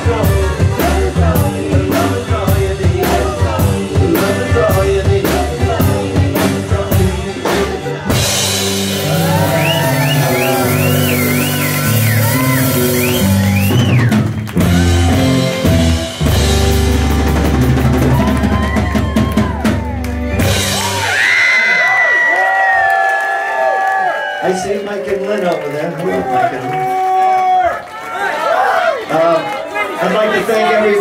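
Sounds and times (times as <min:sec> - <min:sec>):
high melody line: 0:00.0 - 0:21.1
live rock band playing: 0:00.0 - 0:22.0.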